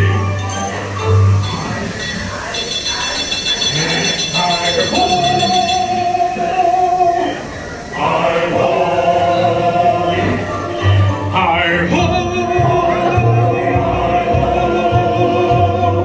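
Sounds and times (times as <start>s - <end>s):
high chiming tones: 0.0s - 12.7s
male chorus singing to music: 0.0s - 16.0s.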